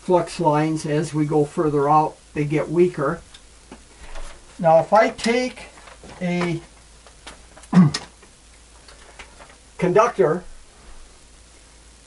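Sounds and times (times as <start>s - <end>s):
man's hesitant vocal sound: 7.6s - 8.1s.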